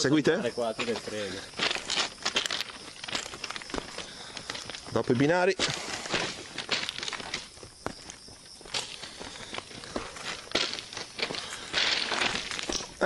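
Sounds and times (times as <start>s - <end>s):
footsteps on rough ground: 0.0s - 13.0s.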